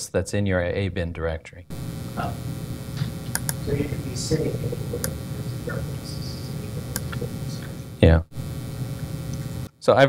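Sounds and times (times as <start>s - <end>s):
steady low hum: 1.7s - 9.8s
faint clicks: 2.9s - 3.6s, 6.9s - 7.7s, 9.0s - 9.5s.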